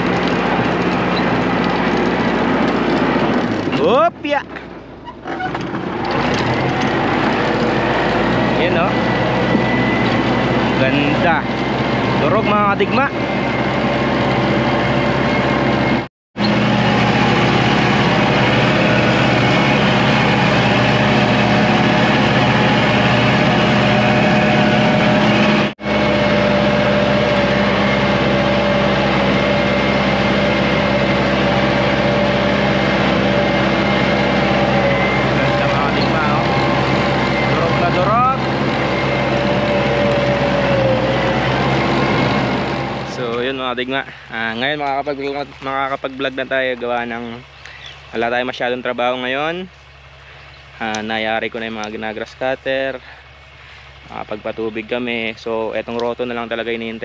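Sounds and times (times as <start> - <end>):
rotary tiller churning soil: 0.0 - 55.3
tractor engine running: 0.0 - 57.0.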